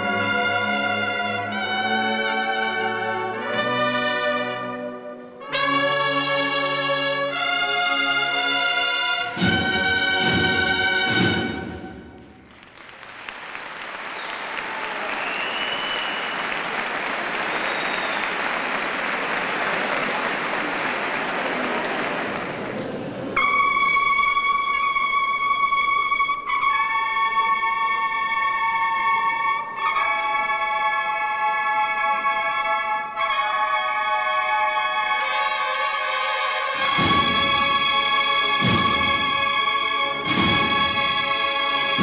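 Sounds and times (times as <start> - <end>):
brass band playing: 0.0 - 12.5, 23.4 - 42.0
audience applause: 12.4 - 23.4
cornets holding loud notes: 15.3 - 42.0.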